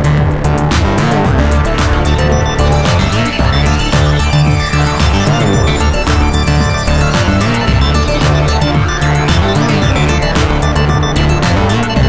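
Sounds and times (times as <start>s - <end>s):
synth bass line: 0.0s - 12.0s
layered synth tones: 0.5s - 12.0s.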